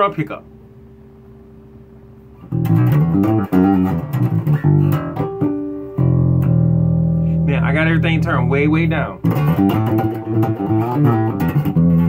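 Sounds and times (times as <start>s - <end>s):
electric bass plucked notes: 0.0s - 12.0s.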